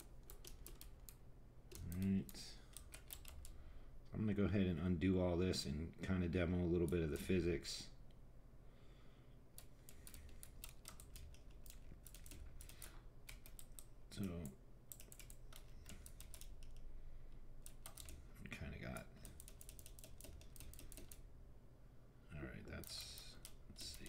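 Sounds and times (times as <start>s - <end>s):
computer keyboard clicks: 0.0s - 3.6s, 9.6s - 16.9s, 17.6s - 18.2s, 19.2s - 21.2s.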